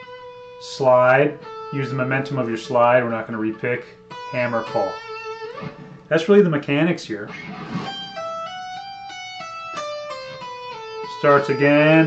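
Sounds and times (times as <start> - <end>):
electric guitar legato lick: 0.0 - 6.6, 7.2 - 12.0.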